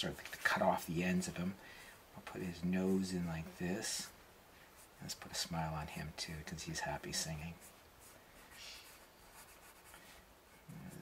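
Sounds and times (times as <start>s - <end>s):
pencil scratching on paper: 7.5s - 10.0s.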